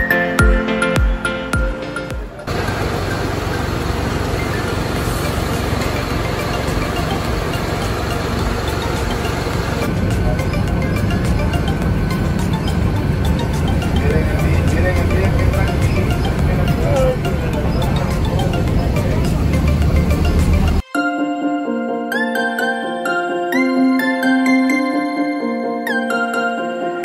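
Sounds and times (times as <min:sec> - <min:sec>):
street traffic: 0:01.2 - 0:20.8
indistinct voices: 0:02.2 - 0:20.8
truck engine rumbling: 0:02.3 - 0:20.8.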